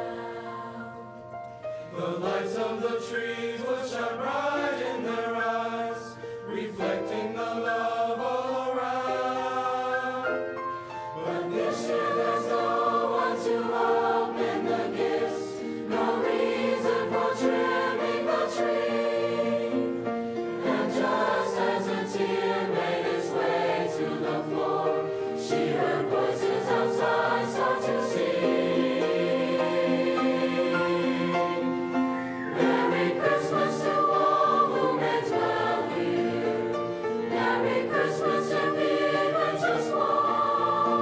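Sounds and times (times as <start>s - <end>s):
choir singing in harmony: 0.0s - 41.0s.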